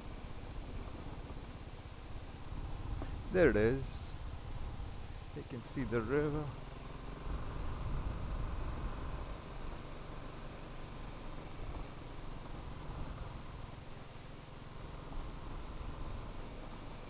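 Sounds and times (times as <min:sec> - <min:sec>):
motorcycle engine rumble: 0:00.0 - 0:17.0.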